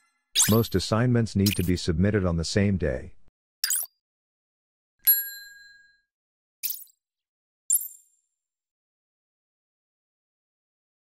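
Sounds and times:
bell-like ding: 5.0s - 6.1s.

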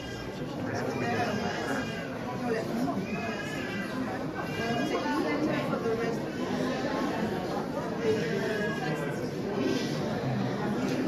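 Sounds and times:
hubbub of voices: 0.0s - 11.0s.

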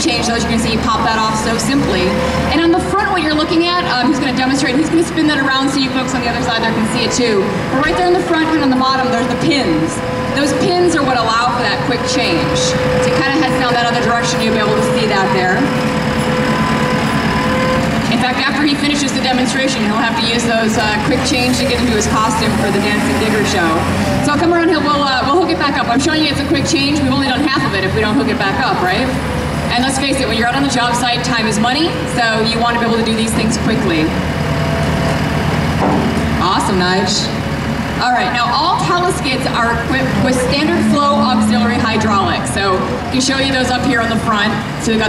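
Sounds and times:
diesel engine running: 0.0s - 45.0s
steady tone: 38.2s - 45.0s.

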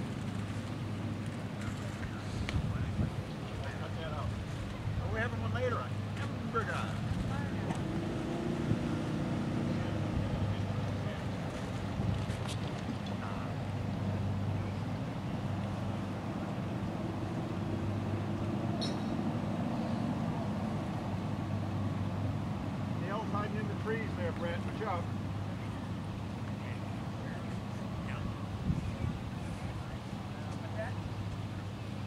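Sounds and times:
distant motor drone: 0.0s - 32.0s.

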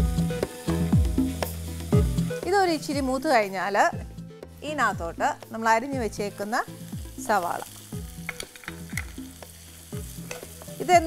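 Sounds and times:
food sizzling in hot oil: 0.0s - 11.0s.

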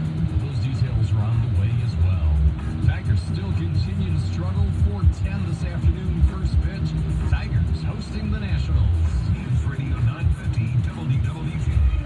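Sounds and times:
music with voice from car radio: 0.0s - 12.0s.

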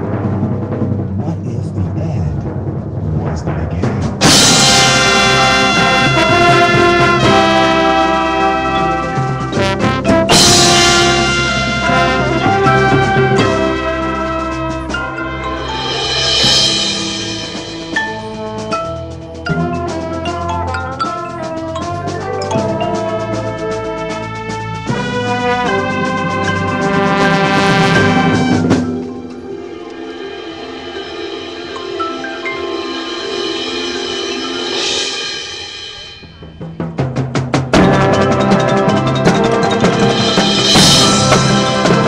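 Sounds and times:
marching band playing chords: 0.0s - 42.0s
run of drum strikes: 0.0s - 42.0s
percussion crash: 3.6s - 42.0s
sharp percussion hit: 4.2s - 23.4s, 25.0s - 42.0s.

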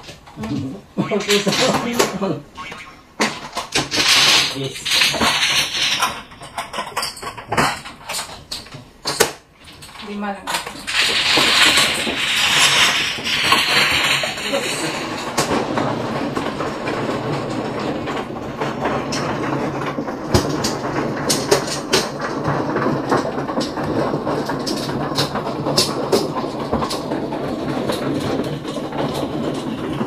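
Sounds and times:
mahjong table shuffling rattle: 0.0s - 30.0s
plastic tiles clicking: 1.2s - 15.8s.

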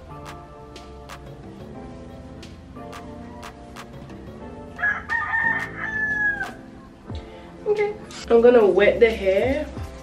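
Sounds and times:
background music with steady beat: 0.0s - 10.0s
rooster crowing: 4.8s - 6.6s.

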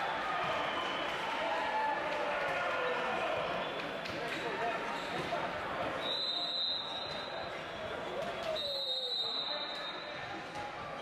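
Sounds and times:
voices chattering in sports hall: 0.0s - 11.0s.

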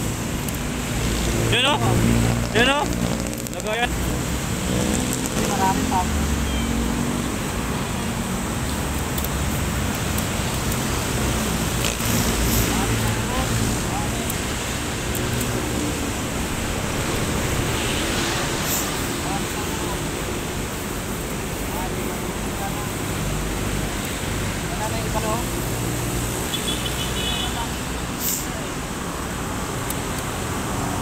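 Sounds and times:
rushing outdoor background noise: 0.0s - 31.0s
faint crackles: 2.2s - 4.0s.

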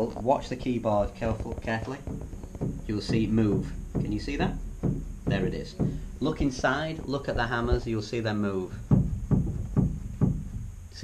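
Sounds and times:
piano pedal dull knocks: 0.0s - 10.7s.

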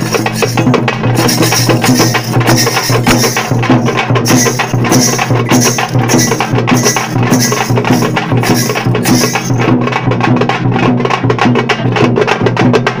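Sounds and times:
bright high layer: 0.0s - 9.7s
frame drums beaten with sticks: 0.0s - 13.0s
large drum low beat: 0.0s - 13.0s.

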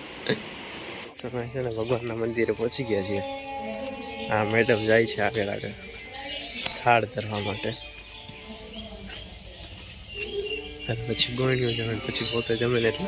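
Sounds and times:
cricket chirping: 4.0s - 9.4s.

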